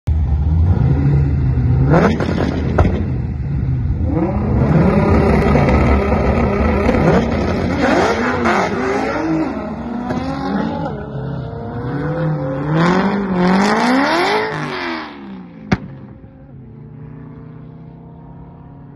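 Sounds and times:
cars accelerating hard: 0.1 - 18.9.

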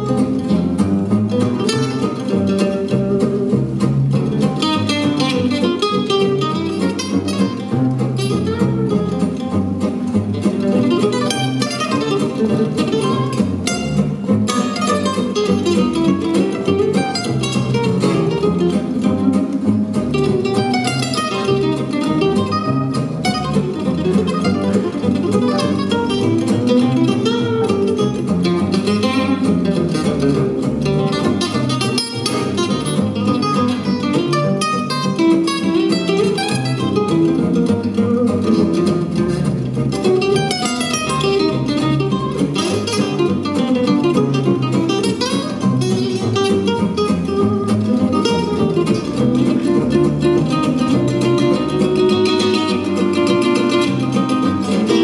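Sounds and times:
acoustic lead guitar runs: 0.0 - 55.0
rhythm guitar: 0.0 - 55.0
upright double bass: 0.0 - 55.0.

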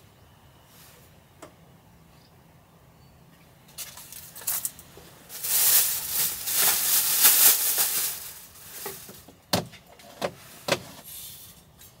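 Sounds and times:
packaging rustling and crinkling: 4.0 - 9.2.

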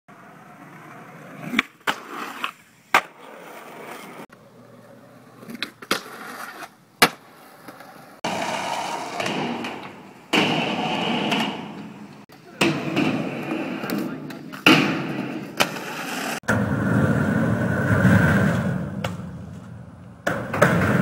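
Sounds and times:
skateboard wheels rolling on concrete: 0.1 - 21.0.

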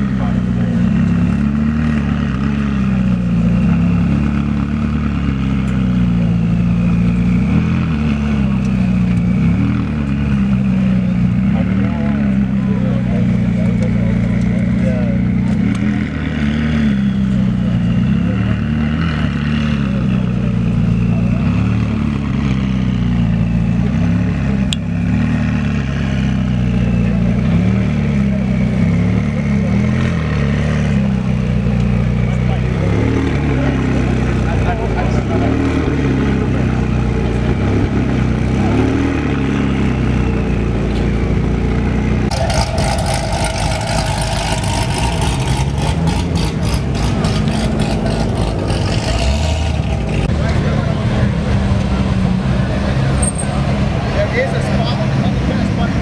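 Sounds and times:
people talking: 0.0 - 1.5, 5.7 - 25.0, 25.7 - 41.4, 42.3 - 49.3, 49.9 - 56.0
car engine idling: 0.0 - 19.0, 19.7 - 35.4, 39.3 - 56.0.

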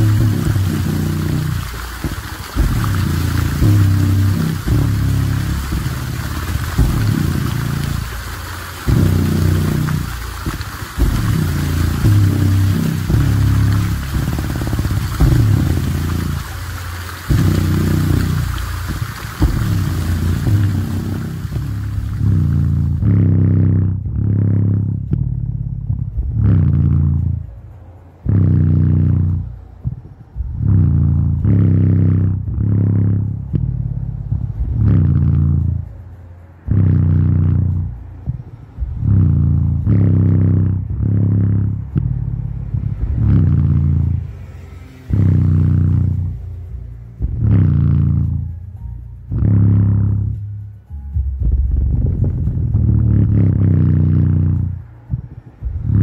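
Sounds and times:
splashing water: 0.0 - 23.1
bass-heavy music from speaker: 0.0 - 56.0.

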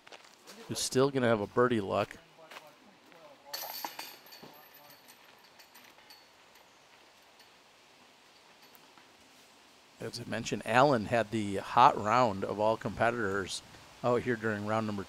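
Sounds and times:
faint outdoor background: 0.0 - 15.0
basket chains jingling: 3.5 - 7.6.

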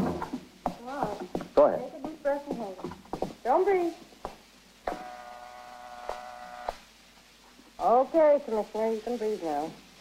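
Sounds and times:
steady electric hum: 0.0 - 10.0.

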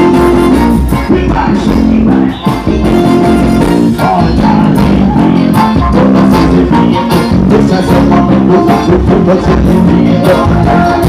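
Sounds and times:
heavy bass line: 0.0 - 11.0
live band music over pa: 0.0 - 11.0.

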